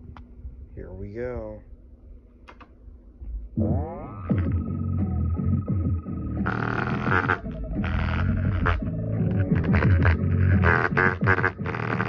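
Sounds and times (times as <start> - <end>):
bass-heavy music from small speaker: 3.6 - 12.0
card buzzing on speaker: 6.4 - 12.0.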